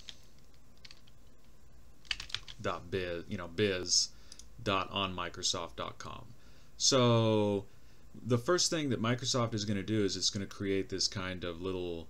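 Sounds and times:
computer keyboard keystrokes: 0.8s - 1.1s, 2.0s - 2.6s.

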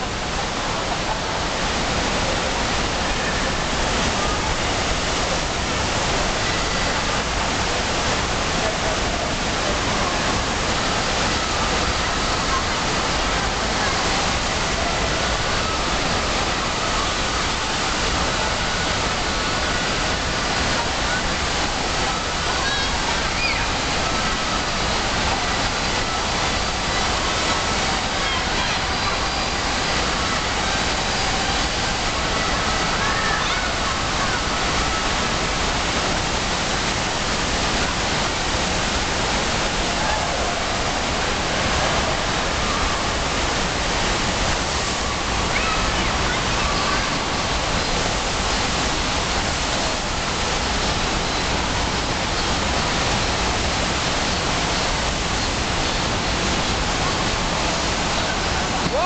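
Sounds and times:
water rushing and spraying: 0.0s - 59.0s.

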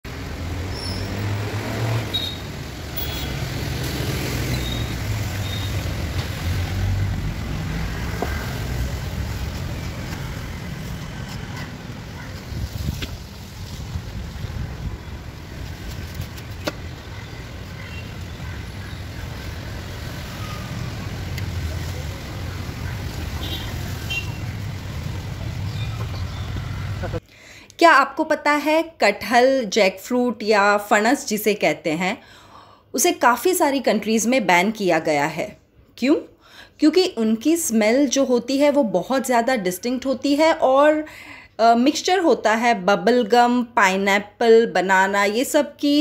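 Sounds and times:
road traffic rumble: 0.0s - 27.3s.

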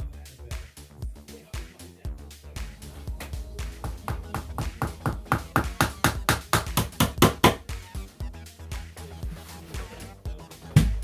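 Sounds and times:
background music: 0.0s - 11.0s
hammer tapping nails: 3.8s - 7.6s.

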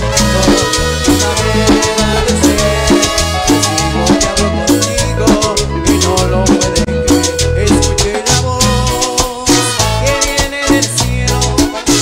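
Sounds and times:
accordion: 0.0s - 12.0s
drum kit: 0.0s - 12.0s
steady bass line: 0.0s - 12.0s
trumpet: 0.0s - 12.0s.

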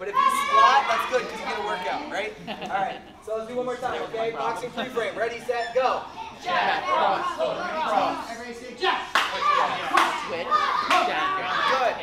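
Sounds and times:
echoing chatter in a hall: 0.0s - 12.0s.

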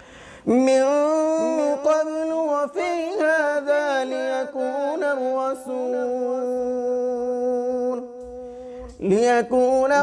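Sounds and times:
man reciting melodically: 0.1s - 10.0s.

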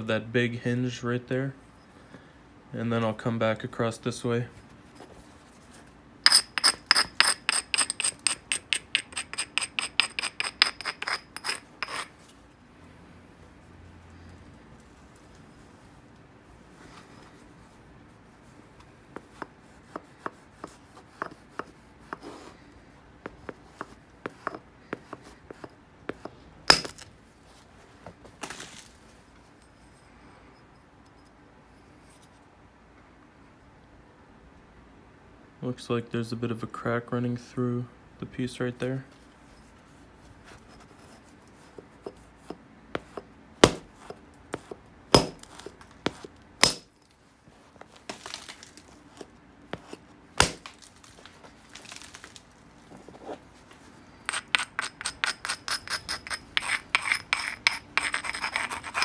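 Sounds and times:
stone edge scraping: 6.2s - 12.2s, 19.2s - 22.4s, 23.3s - 27.1s, 40.6s - 46.9s, 48.1s - 50.8s, 54.2s - 59.0s
antler strike on glassy stone: 26.7s - 27.0s, 46.6s - 46.9s.

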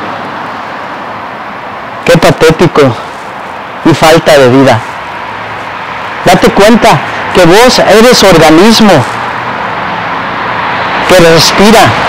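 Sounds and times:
road traffic hiss and rumble: 0.0s - 12.0s.

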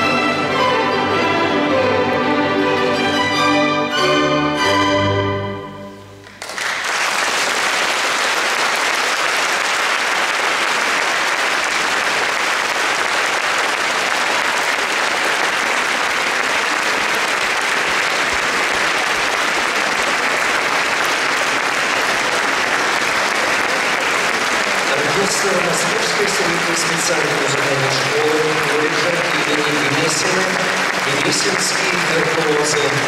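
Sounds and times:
orchestra chord: 0.0s - 6.2s
audience applauding: 6.2s - 33.0s.

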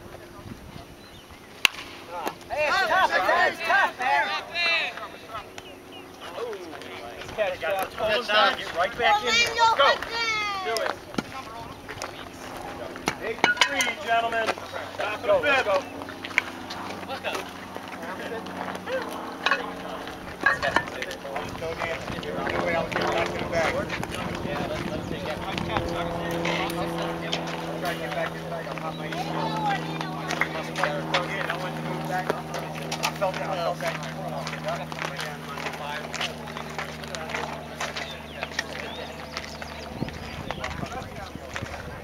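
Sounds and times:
players calling out and talking: 0.0s - 42.0s
bat hitting baseball: 1.6s - 2.0s, 13.4s - 14.0s
people shouting excitedly: 2.5s - 5.3s, 9.0s - 10.8s.

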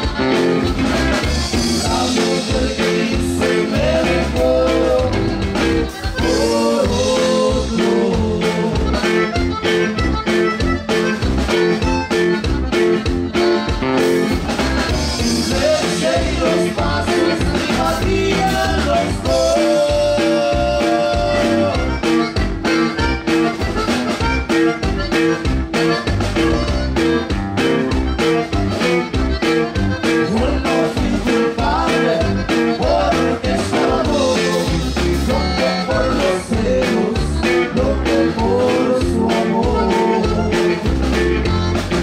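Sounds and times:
bajo sexto: 0.0s - 42.0s
button accordion melody: 0.0s - 42.0s
drum kit steady beat: 0.0s - 42.0s.

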